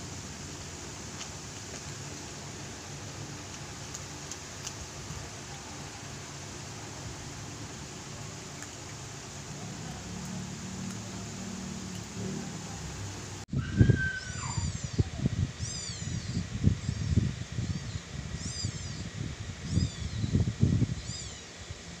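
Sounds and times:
low hum and hiss: 0.0 - 22.0
short high-pitched chirping calls: 14.1 - 20.3, 21.0 - 21.5.

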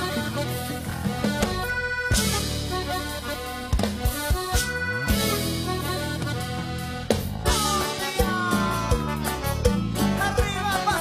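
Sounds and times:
accordion melody: 0.0 - 11.0
band playing cumbia: 0.0 - 11.0.

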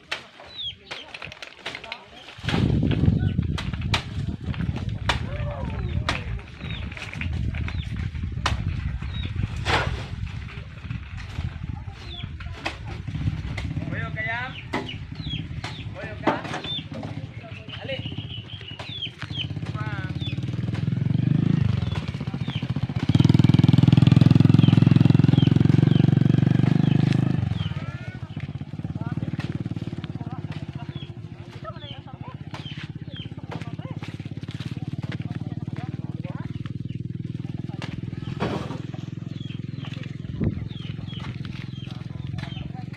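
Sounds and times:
truck diesel engine revving: 19.3 - 31.3.

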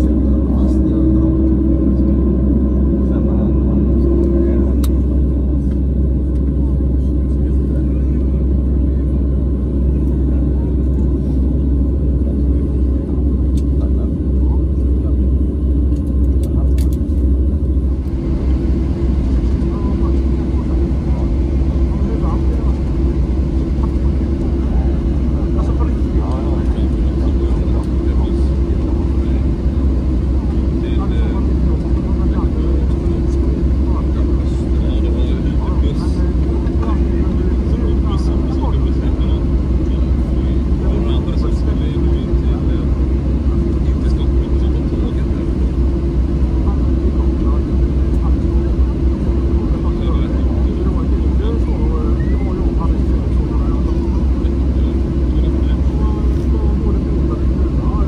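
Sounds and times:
loud low engine rumble: 0.0 - 58.0
steady hum: 0.0 - 58.0.

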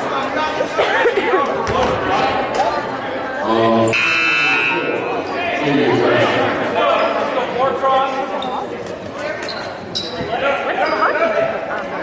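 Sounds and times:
scoreboard horn buzzing: 3.9 - 5.0.

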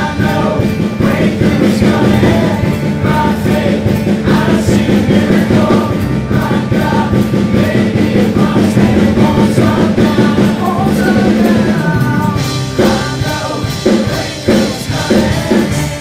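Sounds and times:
guitars and bass playing: 0.0 - 16.0
voices singing together: 0.0 - 16.0.

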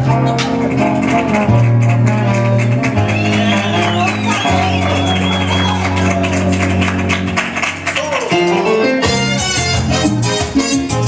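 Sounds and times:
salsa music on electronic keyboard: 0.0 - 11.0.

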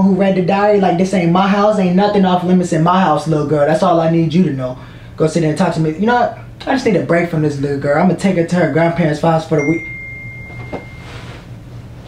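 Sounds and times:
high electronic tone: 9.6 - 11.5.

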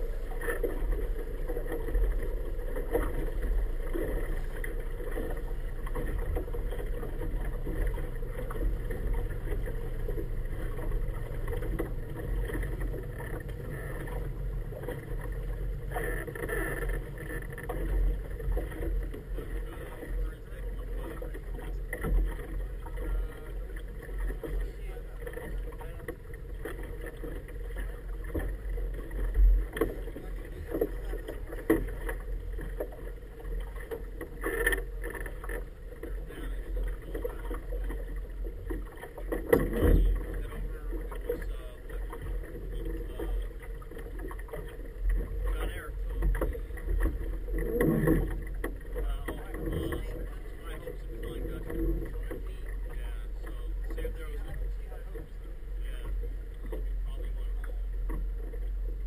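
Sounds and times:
outboard motor running: 0.0 - 59.0.

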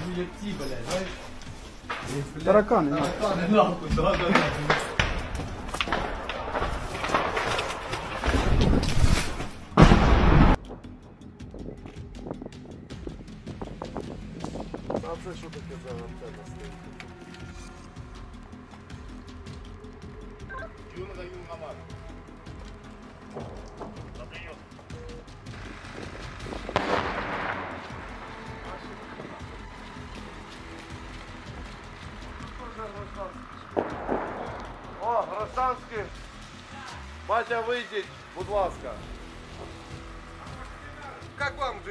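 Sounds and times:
men's voices: 0.0 - 7.4, 14.5 - 41.9
gunshot bang echoing: 9.8 - 10.6, 26.8 - 28.0, 33.8 - 34.8.

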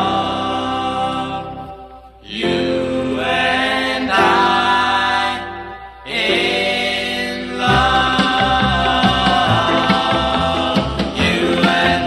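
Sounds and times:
vocal group singing close harmony: 0.0 - 12.0.

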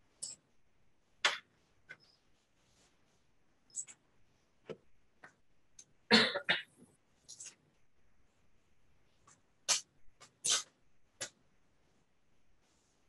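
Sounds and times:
person coughing: 6.1 - 6.7.

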